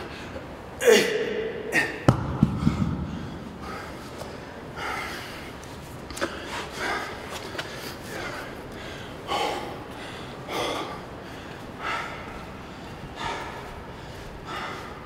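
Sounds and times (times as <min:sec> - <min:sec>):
man gasping breaths: 0:00.0 - 0:05.6, 0:06.2 - 0:15.0
man grunting: 0:00.8 - 0:02.1.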